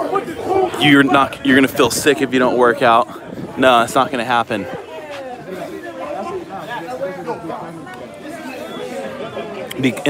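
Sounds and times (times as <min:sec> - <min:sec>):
indistinct background chatter: 0:00.0 - 0:10.0.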